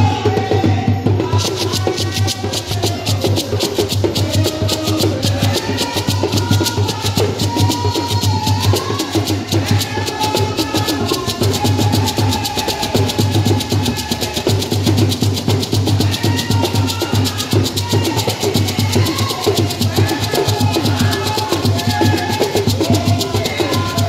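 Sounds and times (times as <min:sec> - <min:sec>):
woman singing through loudspeakers: 0:00.0 - 0:14.9, 0:15.6 - 0:24.0
live drumming: 0:00.0 - 0:24.0.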